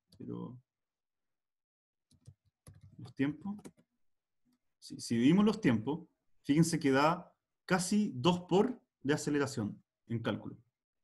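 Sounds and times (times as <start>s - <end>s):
computer keyboard keystrokes: 2.1s - 3.8s.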